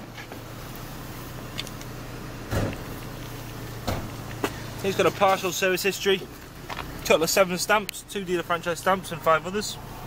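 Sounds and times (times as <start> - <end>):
car engine idling: 0.0 - 10.0
thump: 2.5 - 2.8, 3.8 - 4.1.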